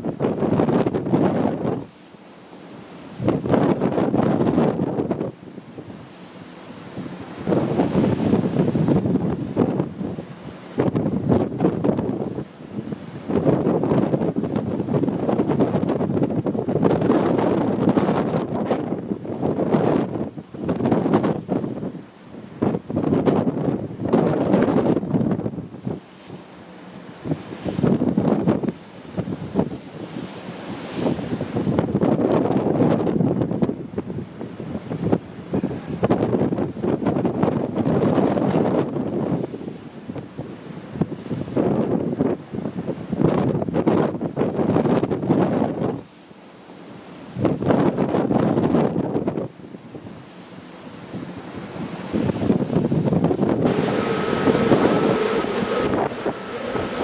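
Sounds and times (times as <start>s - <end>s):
wind buffeting microphone: 0.0s - 2.0s, 3.0s - 46.1s, 47.0s - 57.0s
waves breaking along hull: 0.0s - 57.0s.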